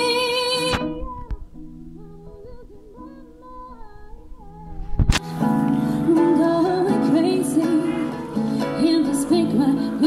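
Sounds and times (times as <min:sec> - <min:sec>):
woman singing softly: 0:00.0 - 0:10.0.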